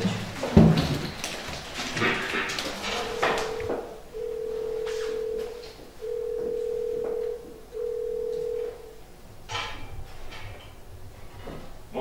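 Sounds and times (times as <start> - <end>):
electronic telephone-like beeps: 3.0 - 8.8.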